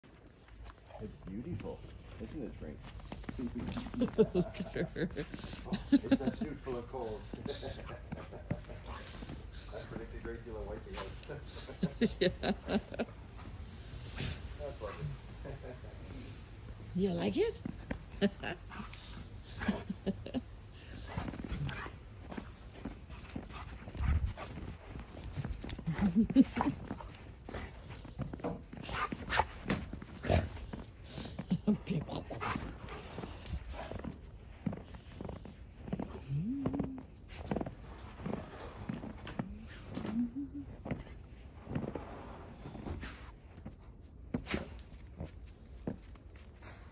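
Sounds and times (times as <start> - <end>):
puppy crunching through snow: 0.0 - 12.9, 17.2 - 40.0
dog snuffling: 0.1 - 15.0, 20.8 - 46.9.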